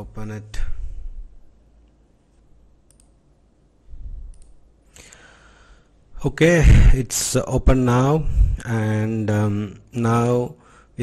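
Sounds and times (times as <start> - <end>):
computer mouse clicks: 2.8 - 3.2, 4.3 - 5.2.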